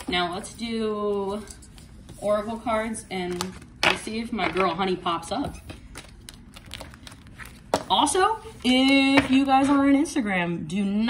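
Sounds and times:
cards rustling: 0:05.7 - 0:09.1.

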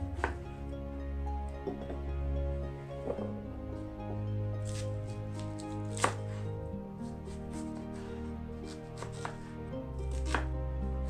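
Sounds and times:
soft background music: 0:00.0 - 0:11.0
knife cutting onion on board: 0:04.6 - 0:06.4, 0:08.7 - 0:09.5, 0:10.1 - 0:10.6.

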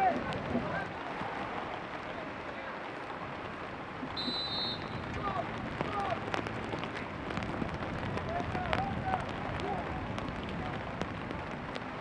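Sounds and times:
steady rain: 0:00.0 - 0:12.0
referee's whistle blast: 0:04.2 - 0:05.0.

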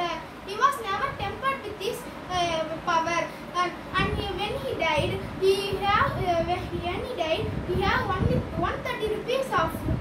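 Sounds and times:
boy speaking: 0:00.0 - 0:10.0.

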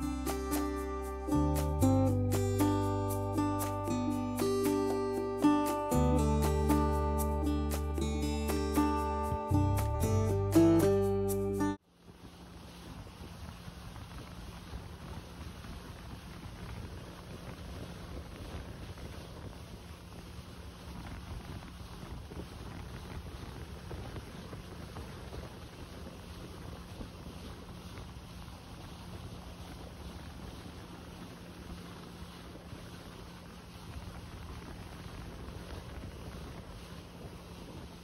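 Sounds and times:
faint engine hum: 0:00.0 - 0:38.0
water rushing: 0:00.0 - 0:38.0
wind on microphone: 0:00.0 - 0:38.0.

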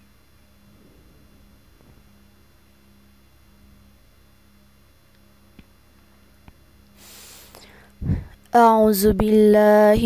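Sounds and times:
faint electrical hum: 0:00.0 - 0:10.0
breath into microphone: 0:07.0 - 0:08.4.

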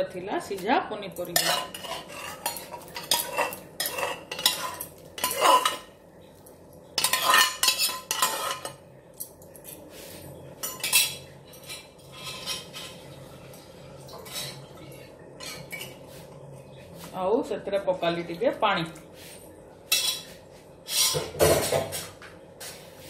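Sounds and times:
metal spoon scraping steel bowl: 0:01.4 - 0:05.8, 0:07.0 - 0:08.8, 0:10.6 - 0:13.0, 0:14.2 - 0:14.6, 0:20.9 - 0:21.3.

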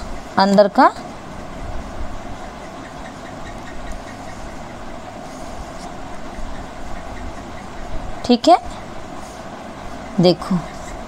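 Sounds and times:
low background hum: 0:00.0 - 0:11.0
pencil strokes on paper: 0:03.9 - 0:07.8.

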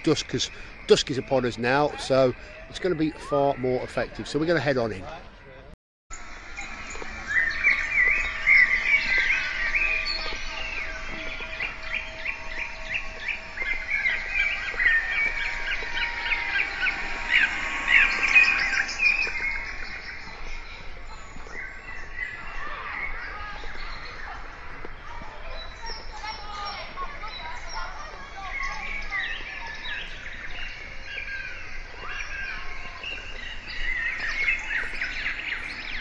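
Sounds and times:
birds chirping and singing: 0:00.0 - 0:04.9, 0:06.2 - 0:36.0
faint steady held tones: 0:06.2 - 0:31.0.

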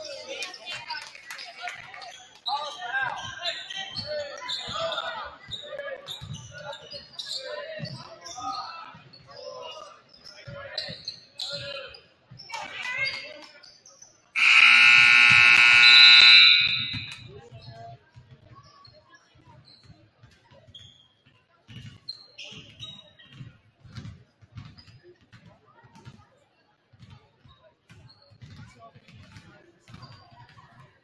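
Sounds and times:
voices in a large hall: 0:00.0 - 0:31.0
scoreboard buzzer: 0:14.4 - 0:17.3.

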